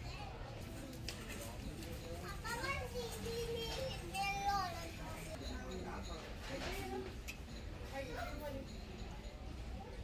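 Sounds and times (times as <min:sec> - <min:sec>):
children talking: 0:00.0 - 0:10.0
murmur of store noise: 0:00.0 - 0:10.0.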